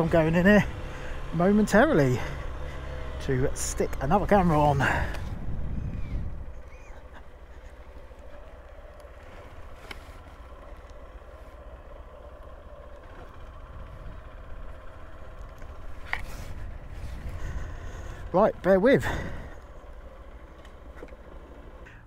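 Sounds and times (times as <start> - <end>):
motorcycle engine low rumble: 0.0 - 22.0.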